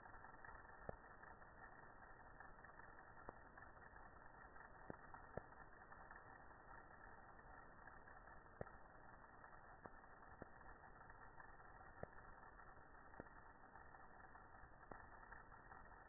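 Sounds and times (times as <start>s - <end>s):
faint clicks: 0.0s - 16.0s.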